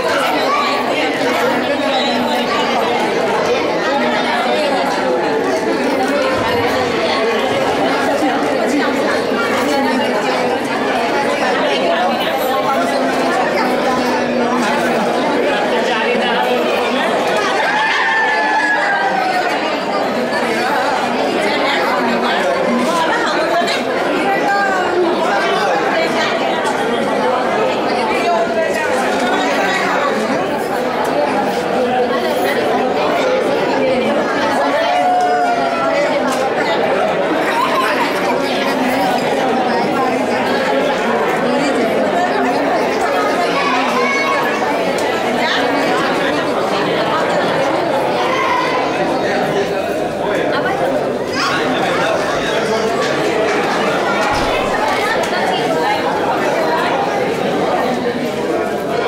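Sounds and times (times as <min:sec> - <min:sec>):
crowd conversation din: 0:00.0 - 0:59.0
voices rising above crowd: 0:00.0 - 0:59.0.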